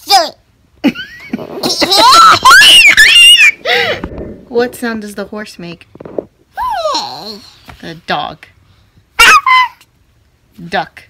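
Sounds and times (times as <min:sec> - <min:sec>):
toddler squealing with laughter: 0:01.9 - 0:03.9, 0:09.2 - 0:09.9.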